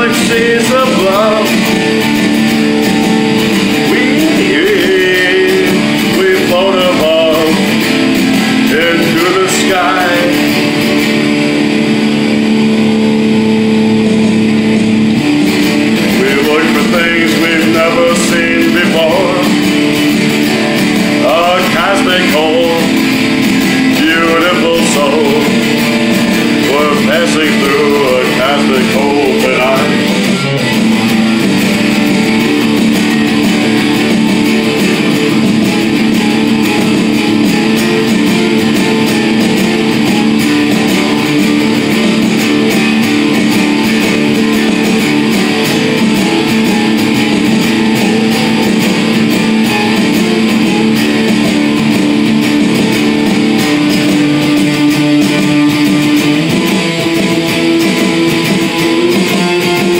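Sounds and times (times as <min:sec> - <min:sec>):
electric guitar rock playing: 0:00.0 - 0:59.9.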